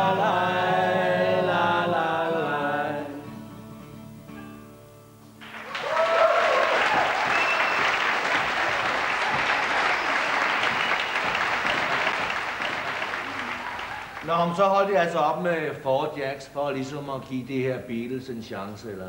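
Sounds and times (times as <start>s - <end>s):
audience cheering: 5.4s - 14.6s
audience applause: 5.4s - 14.7s.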